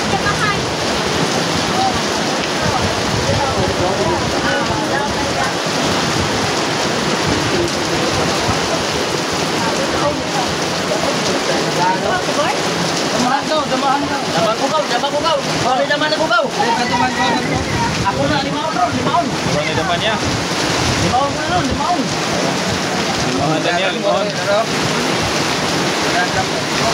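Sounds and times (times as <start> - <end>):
wind rushing on microphone: 0.0 - 10.6, 16.7 - 23.4
faint voices: 0.0 - 26.9
rain on a hard surface: 0.0 - 26.9.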